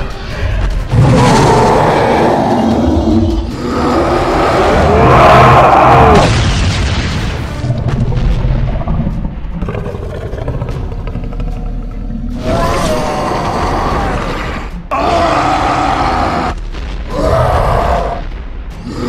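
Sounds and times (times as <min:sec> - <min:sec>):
background music: 0:00.0 - 0:19.0
cartoon booms and crashing: 0:06.0 - 0:08.5.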